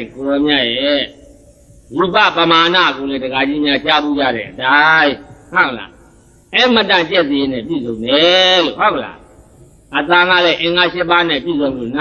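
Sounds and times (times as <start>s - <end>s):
man preaching: 0.0s - 1.2s, 1.9s - 9.2s, 9.9s - 12.0s.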